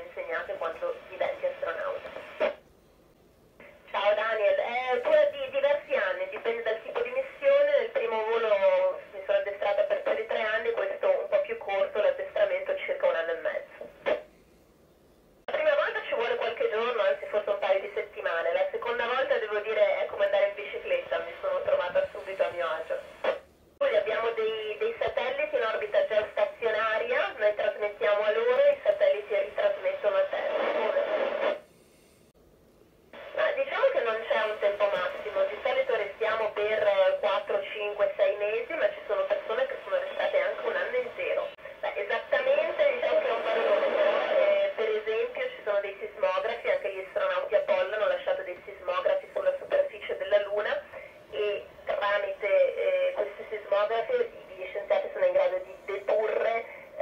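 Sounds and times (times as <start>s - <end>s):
radio voice over loudspeaker: 0.0s - 2.6s, 3.9s - 14.2s, 15.5s - 31.6s, 33.2s - 57.0s.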